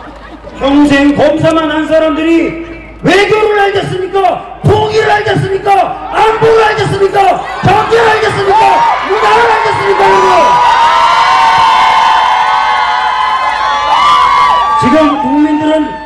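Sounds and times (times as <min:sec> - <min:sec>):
crowd cheering and shouting: 0:04.7 - 0:16.0.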